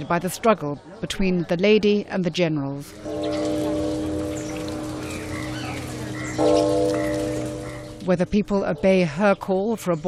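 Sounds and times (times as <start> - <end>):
small birds chirping: 0.0 - 10.0
deep temple bell ringing: 2.9 - 9.6.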